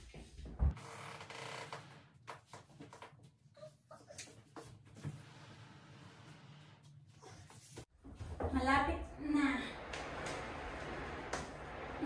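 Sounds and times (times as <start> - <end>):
wardrobe scraping on wooden floor: 9.8 - 12.0.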